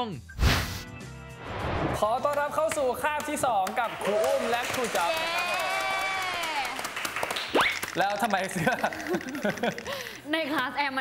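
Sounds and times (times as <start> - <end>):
people clapping: 2.2 - 10.7.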